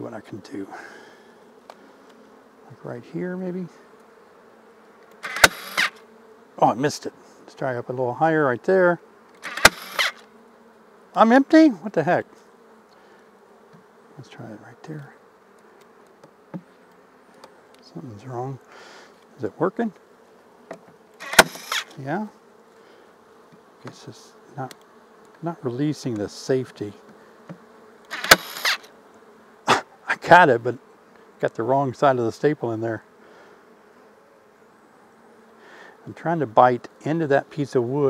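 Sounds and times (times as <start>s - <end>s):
bees humming: 0.0s - 38.0s
staple gun firing: 5.2s - 5.9s, 9.4s - 10.2s, 21.2s - 21.8s, 28.1s - 28.8s
small click: 24.6s - 25.4s.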